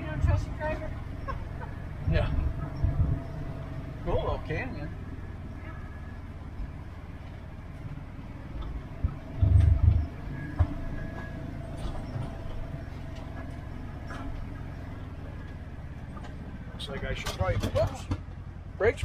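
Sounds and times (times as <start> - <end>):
light rattles: 0.0 - 18.6
vehicle engine running at low speed: 0.0 - 19.0
heavy low thumps over rocks: 1.8 - 16.5.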